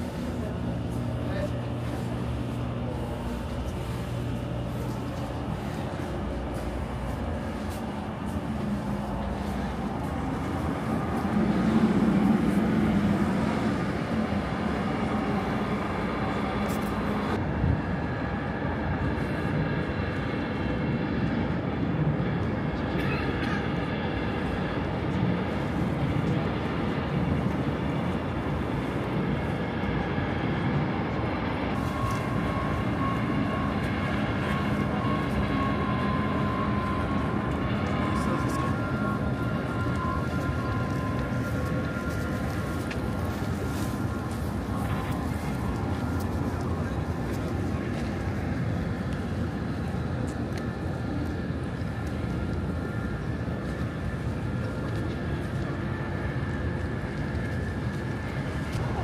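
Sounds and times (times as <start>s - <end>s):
people's voices: 0.0s - 17.4s, 22.4s - 30.2s, 30.9s - 56.2s
machinery drone: 0.0s - 59.0s.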